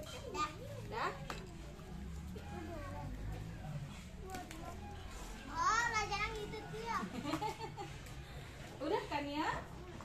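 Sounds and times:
young children chattering: 0.0s - 8.6s.

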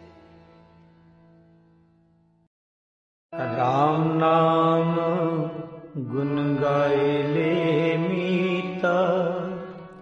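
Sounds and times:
devotional singing: 3.4s - 9.8s.

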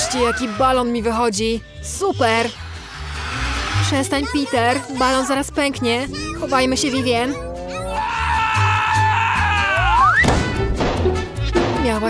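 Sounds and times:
background music with held tones: 0.0s - 12.0s
background music with steady beat: 9.9s - 12.0s.

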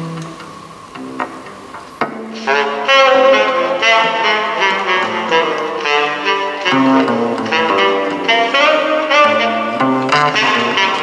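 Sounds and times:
double bass plucked: 0.0s - 11.0s.

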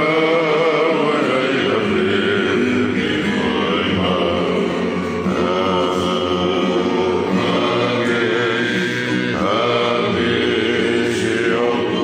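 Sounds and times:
men singing together: 0.0s - 12.0s
strummed acoustic guitars and ukulele: 0.0s - 12.0s.

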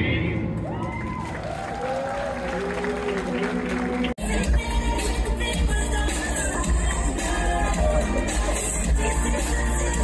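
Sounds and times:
audience applause: 0.6s - 4.2s
stage dance music: 2.4s - 10.0s.

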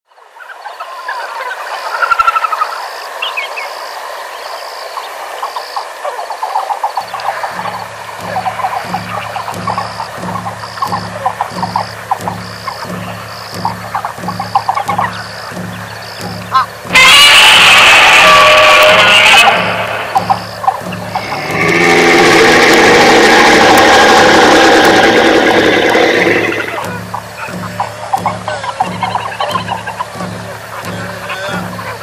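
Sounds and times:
high repeating call: 6.9s - 32.0s
short animal calls: 7.0s - 31.8s
low pulse: 7.0s - 32.0s.

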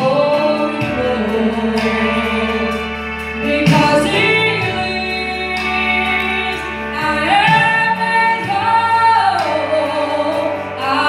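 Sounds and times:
instrumental accompaniment: 0.0s - 11.0s
woman singing gospel song: 0.0s - 11.0s.

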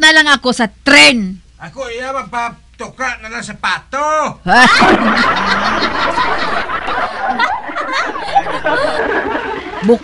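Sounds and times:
people laughing: 4.5s - 10.0s.

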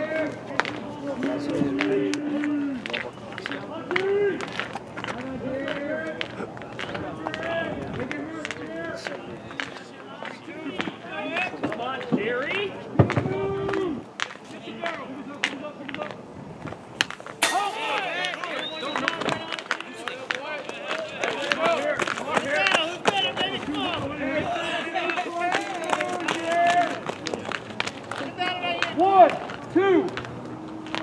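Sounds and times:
baseball hitting bat or glove: 17.4s - 18.6s
people shouting and calling out: 17.4s - 27.1s.

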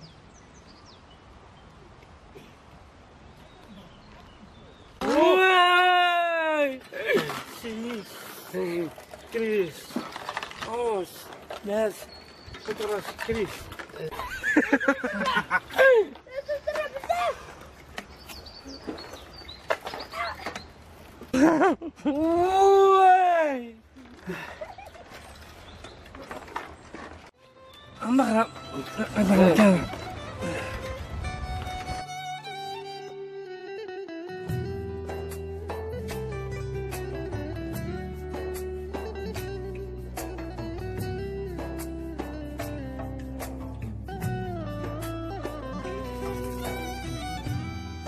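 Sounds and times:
person crying out: 5.1s - 7.3s
swing chains clinking and creaking: 6.8s - 15.5s, 24.0s - 32.2s, 45.7s - 47.6s.

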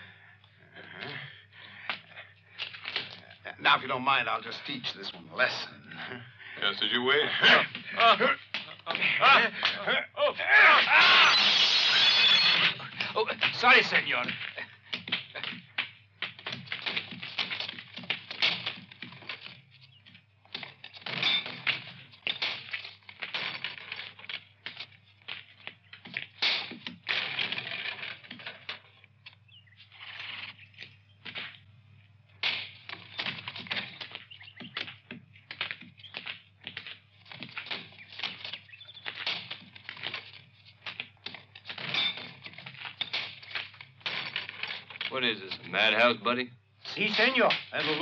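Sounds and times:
horse hooves on hard ground: 12.8s - 46.0s.

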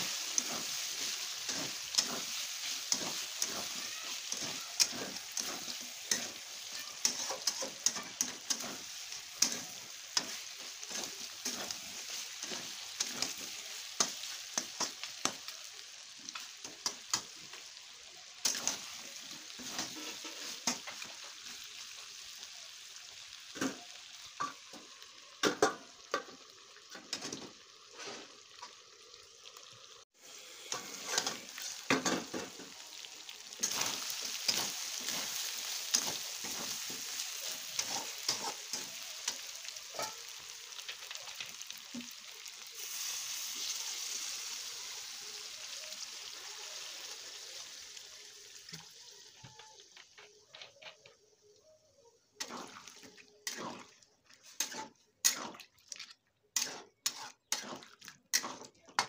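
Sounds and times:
metal spatula scraping a pan: 0.0s - 15.0s, 18.4s - 21.2s, 30.6s - 32.6s, 33.5s - 40.2s, 52.4s - 55.6s, 56.6s - 58.7s
food sizzling in a pan: 0.0s - 59.0s.

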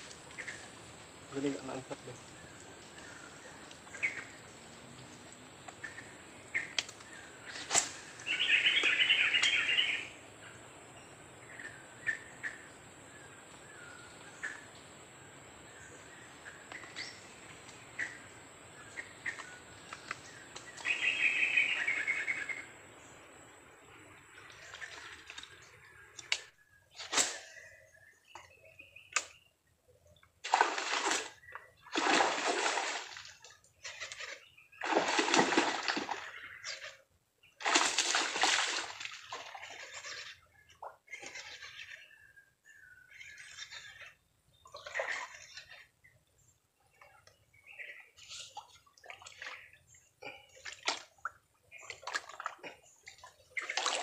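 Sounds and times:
water splashing: 30.4s - 34.1s, 34.8s - 36.8s, 37.6s - 40.3s, 48.6s - 54.0s.

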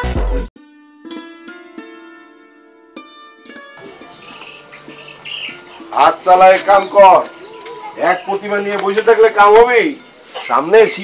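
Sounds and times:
crickets chirping: 3.8s - 11.0s
person speaking loudly: 5.9s - 11.0s.

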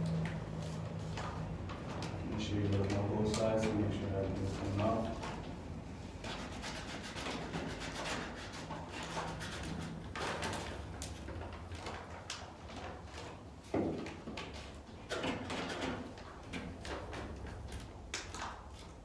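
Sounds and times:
decal rustling and scraping: 0.1s - 17.9s.

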